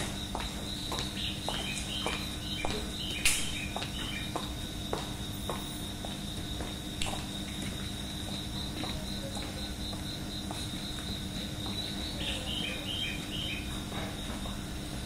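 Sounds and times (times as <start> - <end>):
crickets chirping: 0.0 - 15.0
steady low hum: 0.0 - 15.0.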